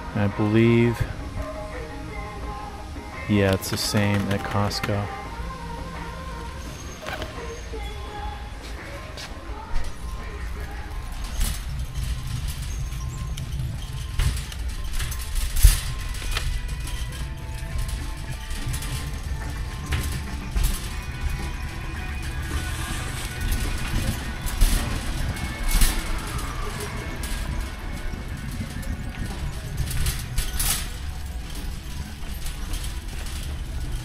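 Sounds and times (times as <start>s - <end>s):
faint background music: 0.0s - 34.0s
shopping cart rolling on concrete: 0.0s - 34.0s
wire basket rattling: 9.6s - 34.0s.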